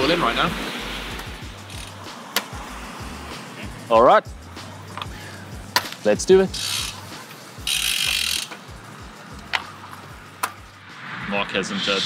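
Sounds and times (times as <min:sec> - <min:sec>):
music with low beat: 0:00.0 - 0:12.0
bicycle freewheel buzzing: 0:01.6 - 0:02.0, 0:06.5 - 0:07.0, 0:07.6 - 0:08.5.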